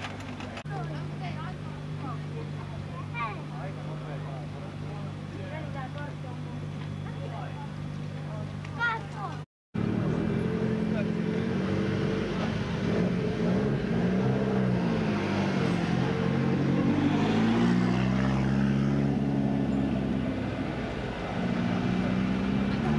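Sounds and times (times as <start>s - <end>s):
rally car engine revving: 9.8s - 22.9s.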